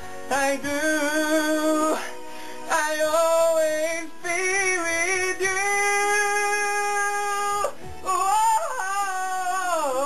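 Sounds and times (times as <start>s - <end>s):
man singing a ballad: 0.0s - 10.0s.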